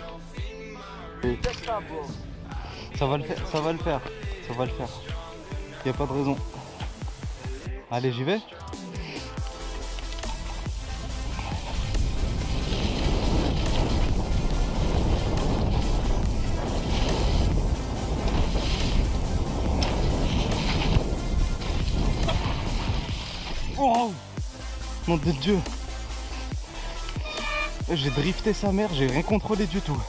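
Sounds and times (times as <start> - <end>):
music: 0.0 - 30.0
mountain bike rattling: 10.0 - 23.8
wind on microphone: 10.7 - 23.8.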